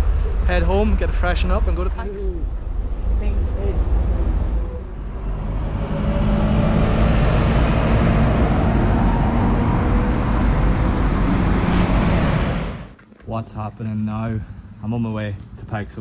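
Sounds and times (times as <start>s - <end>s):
bus engine rumble: 0.0s - 13.0s.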